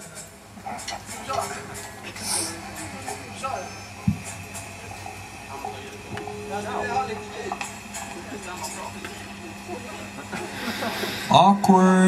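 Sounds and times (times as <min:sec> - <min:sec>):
faint voices: 0:00.0 - 0:12.0
amplifier electrical hum: 0:01.2 - 0:12.0.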